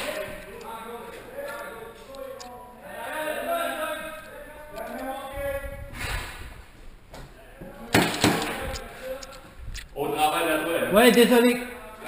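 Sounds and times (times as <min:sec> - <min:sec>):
voices: 0:00.0 - 0:06.3, 0:07.1 - 0:12.0.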